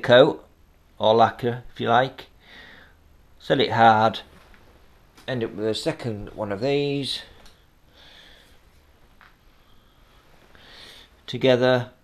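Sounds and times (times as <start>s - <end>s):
faint breathing: 2.4s - 3.1s, 7.2s - 11.3s
breath drawn in: 9.5s - 11.2s.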